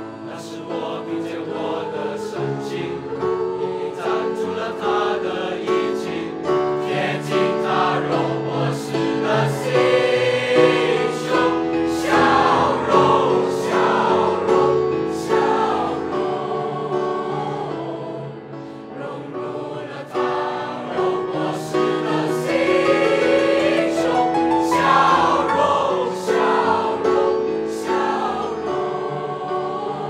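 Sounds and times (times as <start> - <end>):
children's choir singing in harmony: 0.0 - 30.0.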